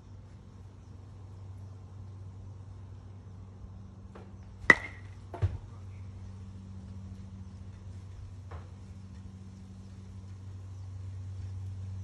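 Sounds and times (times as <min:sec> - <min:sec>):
baseball bat hitting ball: 0:04.6 - 0:05.6.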